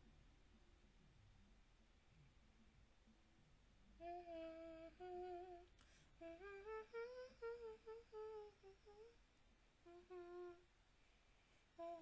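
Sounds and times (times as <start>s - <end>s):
person humming a slow tune: 4.0s - 9.2s, 9.8s - 10.7s, 11.8s - 12.0s.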